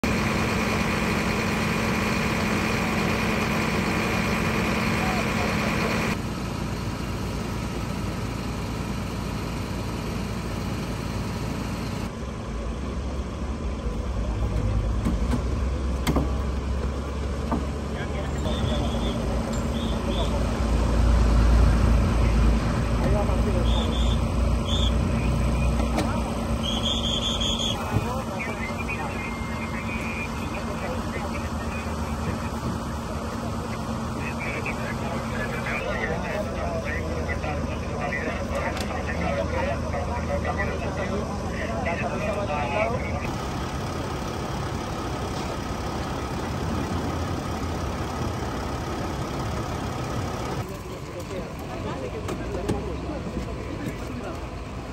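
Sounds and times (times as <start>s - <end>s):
vehicle engine idling: 0.0s - 54.9s
indistinct voices: 21.6s - 43.4s.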